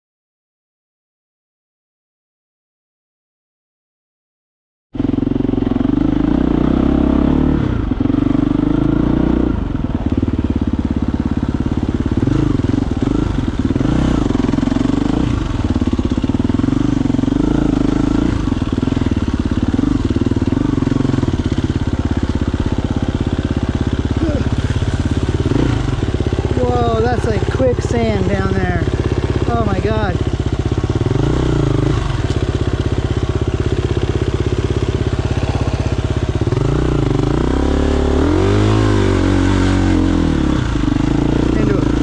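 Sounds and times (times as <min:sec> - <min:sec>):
dirt bike engine revving: 0:05.0 - 0:42.0.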